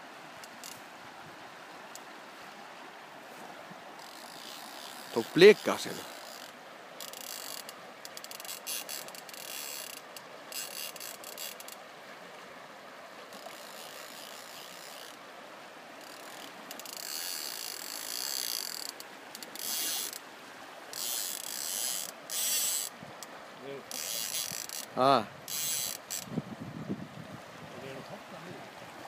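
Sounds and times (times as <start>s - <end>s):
river rushing: 0.0s - 29.0s
fly reel drag clicking: 0.4s - 0.8s, 4.0s - 11.8s, 13.3s - 15.2s, 16.0s - 20.2s, 20.9s - 24.9s, 25.5s - 26.3s.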